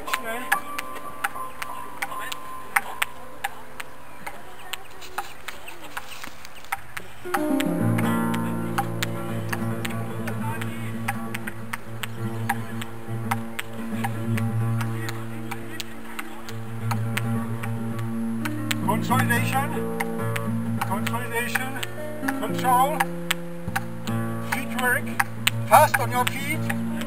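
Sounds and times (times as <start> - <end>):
table tennis balls clicking: 2.0 - 26.8
guitar music: 7.2 - 27.0.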